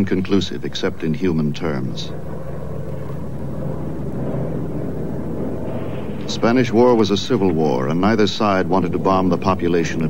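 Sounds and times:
low hum: 0:00.0 - 0:10.0
steady rumbling: 0:00.0 - 0:10.0.

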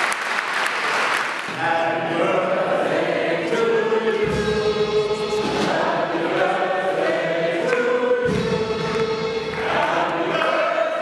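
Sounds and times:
youth choir singing: 0:01.5 - 0:11.0.

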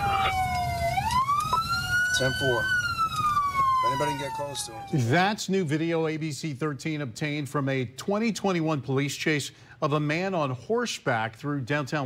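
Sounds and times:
police siren wailing: 0:00.0 - 0:05.2.

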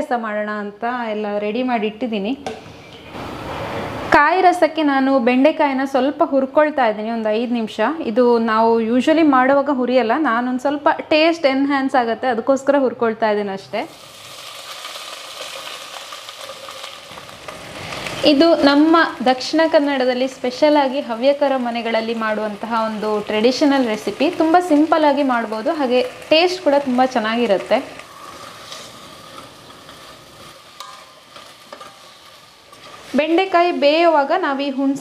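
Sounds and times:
vegetables sizzling in hot oil: 0:13.8 - 0:35.0.

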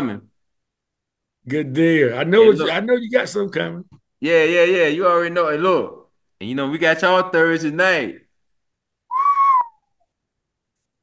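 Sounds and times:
person whistling short high note: 0:09.1 - 0:09.9.

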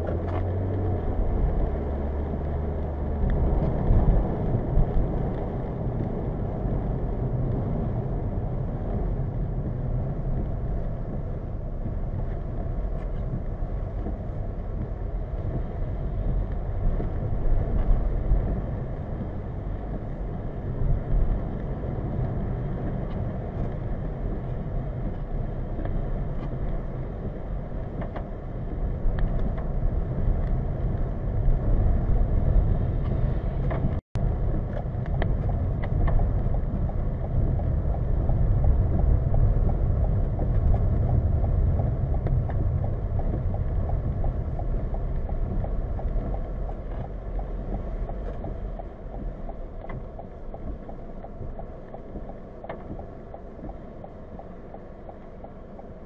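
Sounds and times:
car engine and road noise: 0:00.0 - 0:56.0.

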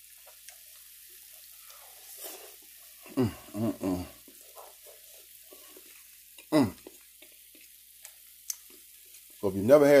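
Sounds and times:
person humming: 0:03.0 - 0:04.2, 0:06.5 - 0:06.9.

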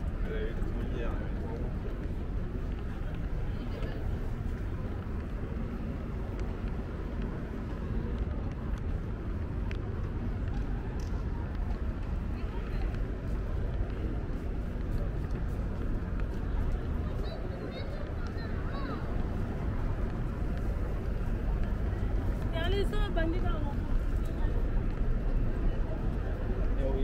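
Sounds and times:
low rumble of traffic: 0:00.0 - 0:27.0
murmur of passers-by talking: 0:00.0 - 0:27.0.

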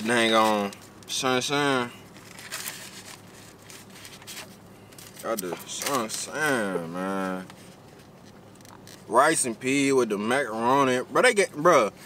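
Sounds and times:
paper wrapper crinkling: 0:02.1 - 0:06.5.

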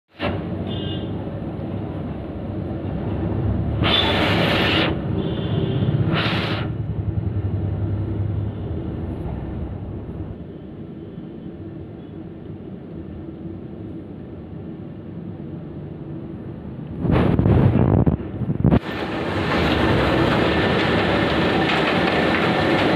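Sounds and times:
loud hissing bursts: 0:03.8 - 0:06.9.

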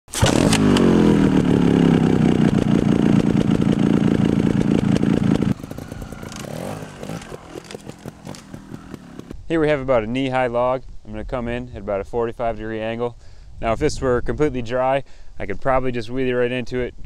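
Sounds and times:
motorcycle engine revving: 0:00.1 - 0:09.4.

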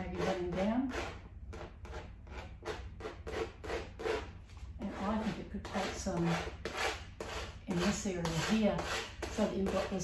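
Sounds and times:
paint scrubbing on canvas: 0:01.8 - 0:10.0.

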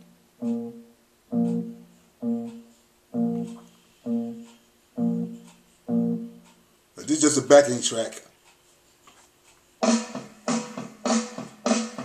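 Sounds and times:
slow blues backing track: 0:00.0 - 0:06.4.

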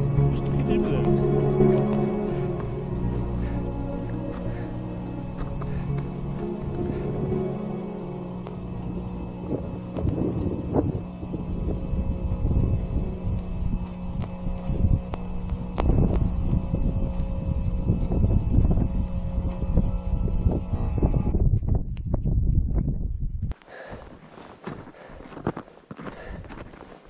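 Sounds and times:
instrumental music with held notes: 0:00.0 - 0:16.6
wind buffeting microphone: 0:08.7 - 0:27.0.

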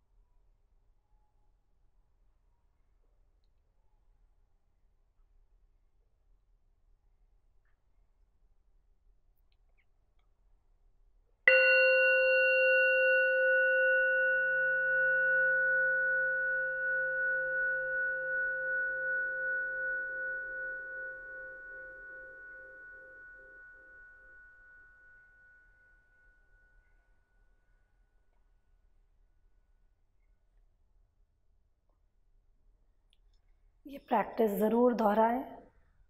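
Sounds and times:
meditation bell ringing: 0:11.5 - 0:27.5.

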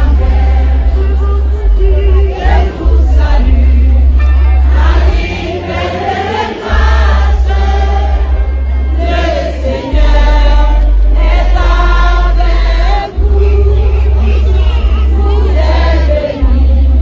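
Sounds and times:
group of voices singing: 0:00.0 - 0:17.0
music with heavy bass: 0:00.0 - 0:17.0.

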